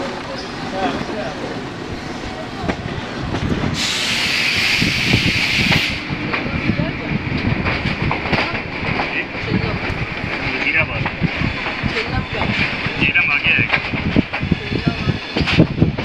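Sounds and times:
train wheels knocking on rails: 2.6 - 16.0
air hiss burst: 3.8 - 6.0.

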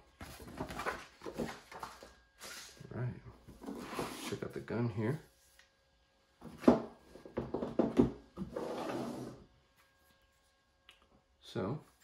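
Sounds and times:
crate scraping across table: 8.4 - 9.4.

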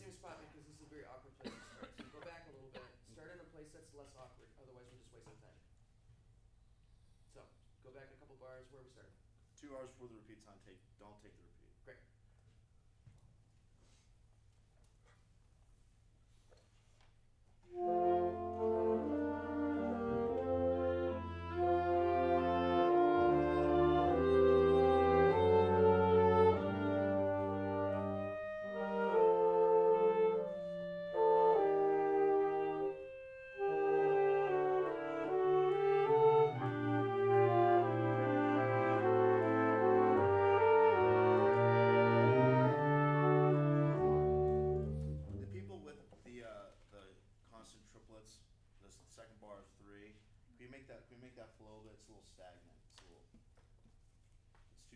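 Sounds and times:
wind ensemble playing: 17.6 - 45.9.

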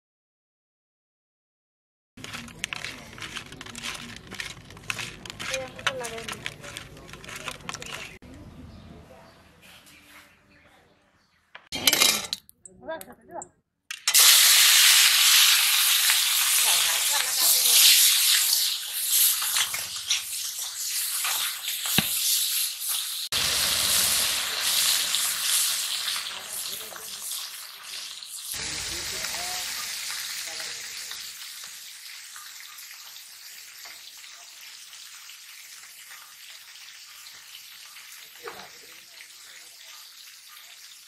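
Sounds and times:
fish sizzling in oil: 14.1 - 41.0.

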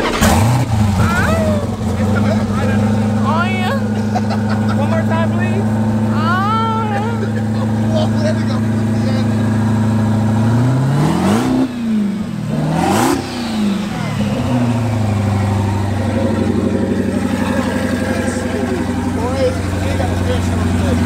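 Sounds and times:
car engine idling and revving: 0.0 - 21.0.

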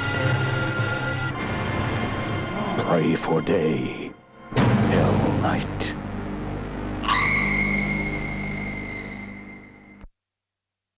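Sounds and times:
music: 0.0 - 10.1
loud boom: 4.5 - 9.7.

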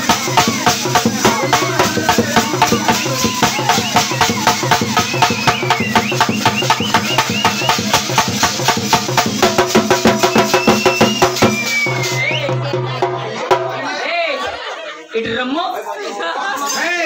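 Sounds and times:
brass hand cymbals clashing: 0.0 - 10.3
drum: 0.0 - 14.0.

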